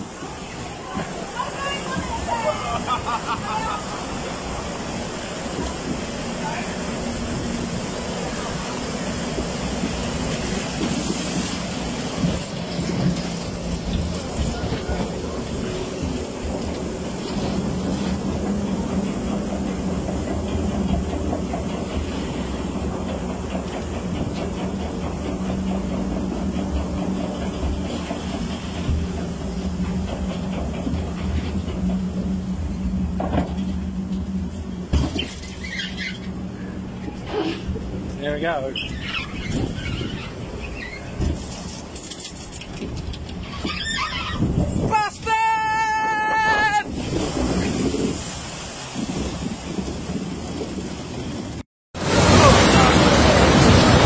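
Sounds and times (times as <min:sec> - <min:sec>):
conveyor mechanical hum: 0:00.0 - 0:47.9.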